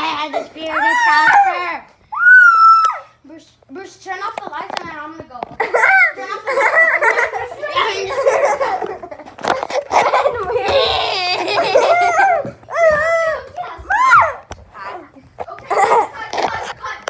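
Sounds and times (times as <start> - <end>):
children laughing: 5.5 - 17.0.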